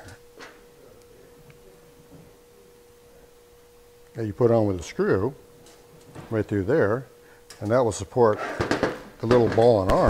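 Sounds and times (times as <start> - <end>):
faint high-pitched hum: 0.0 - 10.0.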